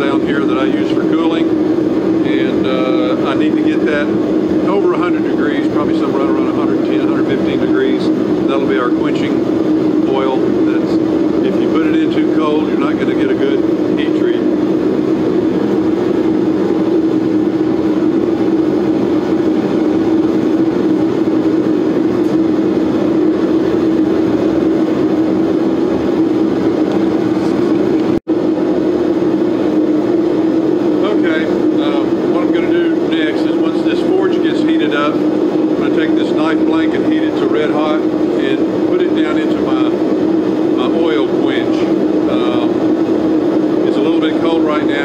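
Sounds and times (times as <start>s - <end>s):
forge burner rushing: 0.0s - 45.0s.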